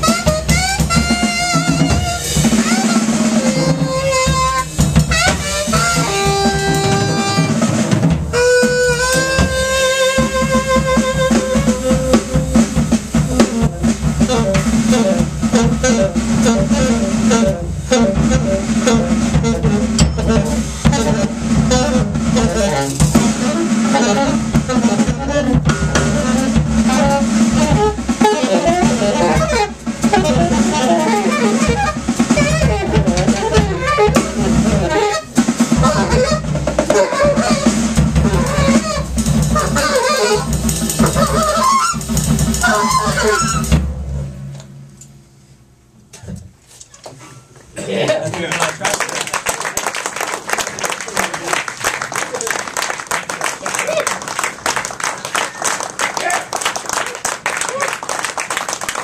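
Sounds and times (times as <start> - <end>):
alto saxophone: 0.0 - 43.8
drum kit: 0.0 - 45.3.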